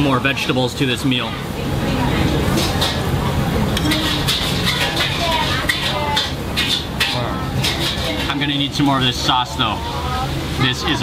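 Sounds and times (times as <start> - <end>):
people talking nearby: 0.0 - 11.0.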